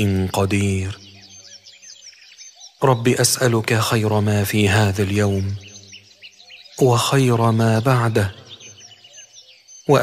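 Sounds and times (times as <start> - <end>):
man reciting: 0.0 - 1.1, 2.8 - 5.8, 6.8 - 8.6
birds chirping: 0.0 - 10.0.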